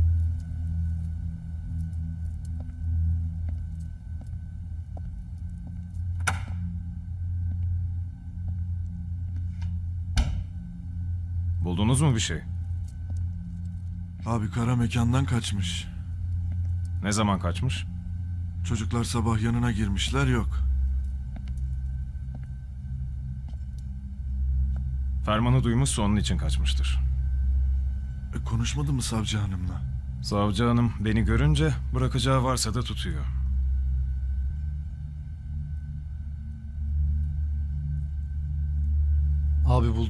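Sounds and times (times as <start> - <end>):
low droning music: 0.0 - 40.0.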